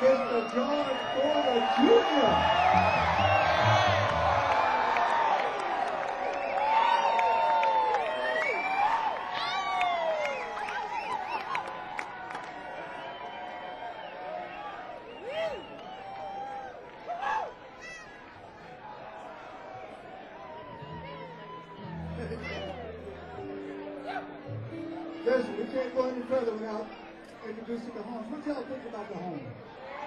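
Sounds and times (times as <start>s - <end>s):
audience cheering and whooping: 0.0s - 17.6s, 18.9s - 24.4s.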